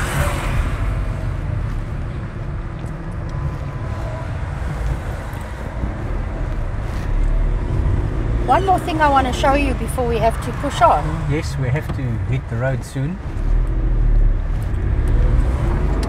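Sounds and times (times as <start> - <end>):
car engine and tyre rumble: 0.0 - 16.0.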